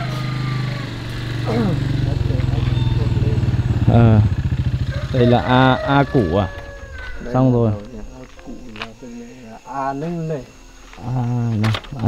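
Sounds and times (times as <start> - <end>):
motorcycle engine droning: 0.0 - 9.0.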